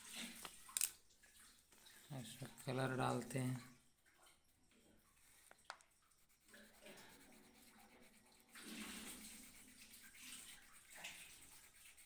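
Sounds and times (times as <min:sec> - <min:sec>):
pencil scratching on paper: 0:05.2 - 0:12.0.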